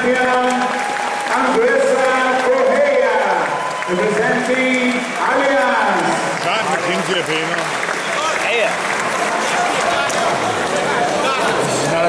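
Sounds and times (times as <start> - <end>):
crowd applause: 0.0 - 12.0.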